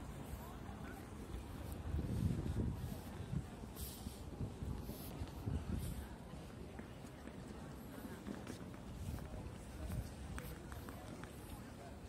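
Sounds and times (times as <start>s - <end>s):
faint indistinct voices: 0.0s - 12.0s.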